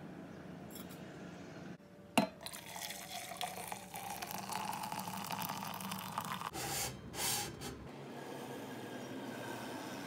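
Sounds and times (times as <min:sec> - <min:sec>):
water pouring into metal pot: 0:02.4 - 0:06.5.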